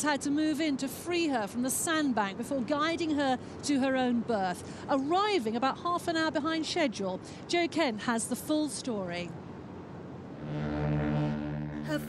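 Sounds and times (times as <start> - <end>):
ship's horn deep blast: 10.3 - 12.0.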